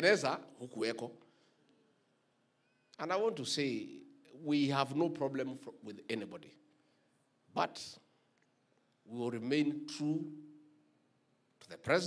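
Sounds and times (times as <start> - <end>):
man speaking through microphone: 0.0 - 1.2, 3.0 - 6.5, 9.1 - 10.4, 11.6 - 12.0.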